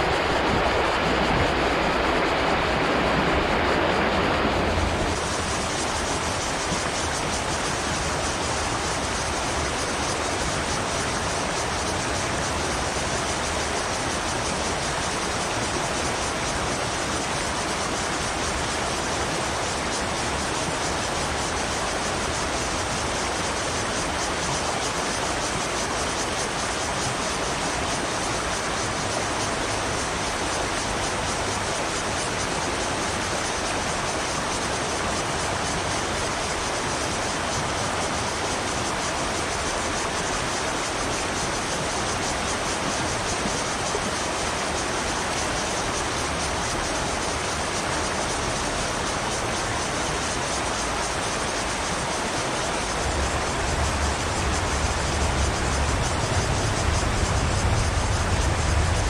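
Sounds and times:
river rushing over rocks: 0.0s - 59.0s.

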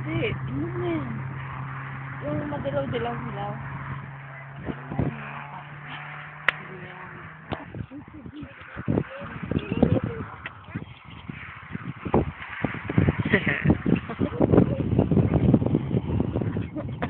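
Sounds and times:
steady low hum: 0.0s - 17.0s
faint voices: 4.2s - 12.1s.

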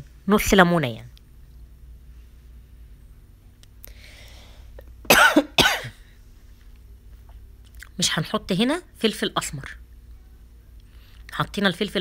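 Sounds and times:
person coughing: 5.1s - 6.0s.

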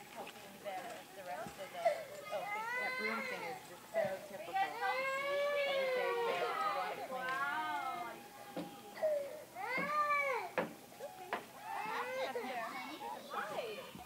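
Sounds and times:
toddlers calling and squealing: 1.6s - 14.0s.

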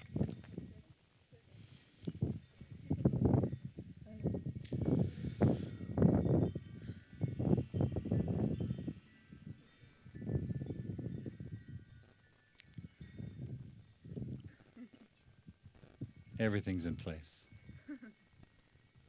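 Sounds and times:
wind buffeting microphone: 0.0s - 17.8s
wind chime ringing: 2.3s - 19.0s.

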